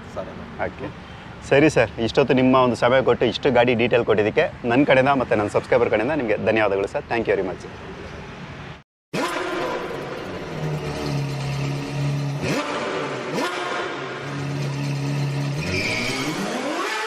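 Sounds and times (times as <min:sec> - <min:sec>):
sports car engine revving: 0:09.2 - 0:17.0.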